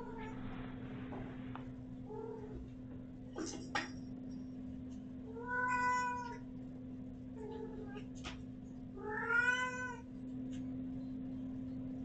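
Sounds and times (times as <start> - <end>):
cat meowing: 5.4 - 6.4, 9.0 - 10.0.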